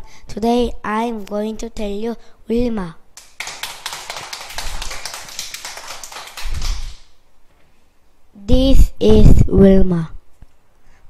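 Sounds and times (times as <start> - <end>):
people clapping: 3.2 - 7.2.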